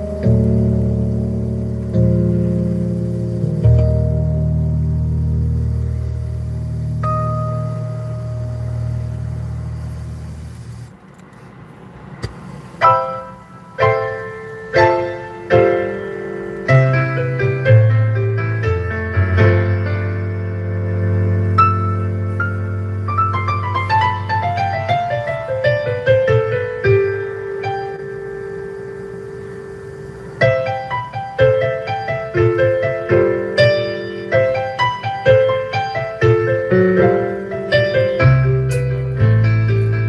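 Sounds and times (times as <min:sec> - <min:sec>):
held piano note ringing: 0:00.0 - 0:10.9
low drone: 0:00.0 - 0:40.0.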